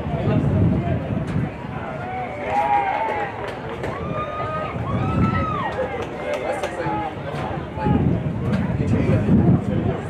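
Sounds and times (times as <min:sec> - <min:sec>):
outdoor background noise: 0:00.0 - 0:10.0
spectators conversing: 0:00.0 - 0:10.0.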